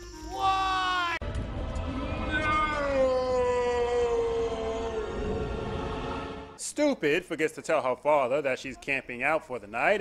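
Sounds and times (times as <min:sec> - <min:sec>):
low rumble: 0:01.2 - 0:06.6
man yelling in anguish: 0:02.3 - 0:05.2.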